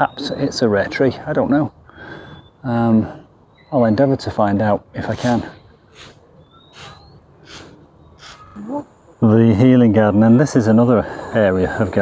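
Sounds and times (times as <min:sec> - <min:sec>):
person breathing: 0:01.9 - 0:02.5, 0:05.9 - 0:08.4.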